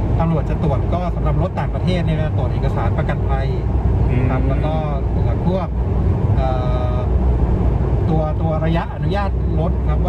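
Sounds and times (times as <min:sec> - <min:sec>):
car road and engine rumble: 0:00.0 - 0:10.0
people talking: 0:00.2 - 0:05.7, 0:06.4 - 0:07.1.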